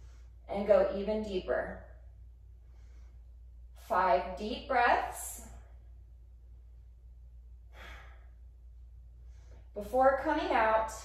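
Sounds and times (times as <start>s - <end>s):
woman breathing deeply: 0.0s - 0.4s, 2.5s - 3.9s, 7.6s - 9.8s.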